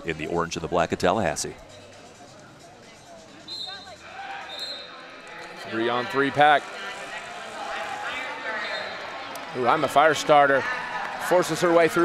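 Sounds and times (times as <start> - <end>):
faint voices in a hall: 0.0 - 12.0
referee whistle blasts: 3.5 - 5.0.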